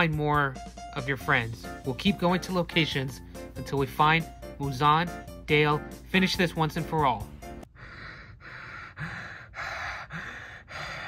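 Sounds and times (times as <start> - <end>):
person breathing hard: 7.6 - 11.0.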